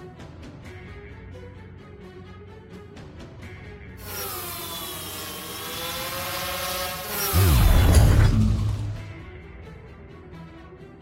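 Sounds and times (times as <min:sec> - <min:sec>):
drone motors whining: 0:04.0 - 0:09.2.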